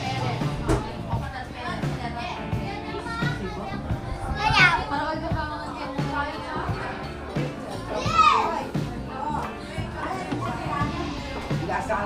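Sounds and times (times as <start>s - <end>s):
background music with beat: 0.0s - 12.0s
people chatting: 0.0s - 12.0s.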